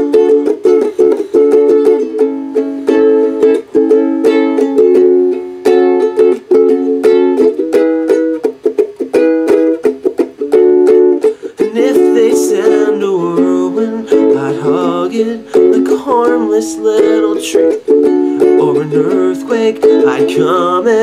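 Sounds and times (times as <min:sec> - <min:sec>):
ukulele strumming chords: 0:00.0 - 0:21.0.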